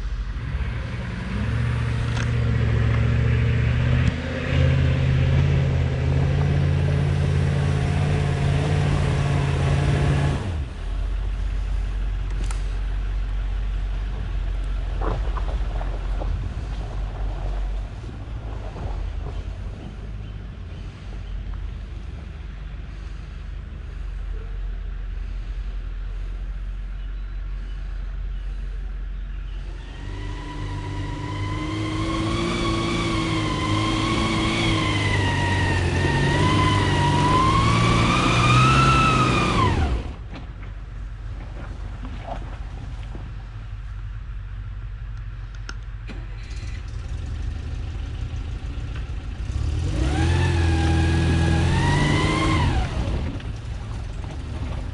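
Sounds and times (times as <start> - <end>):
vehicle engine rumbling: 0.0 - 54.9
loud rising and falling whine: 29.6 - 40.2.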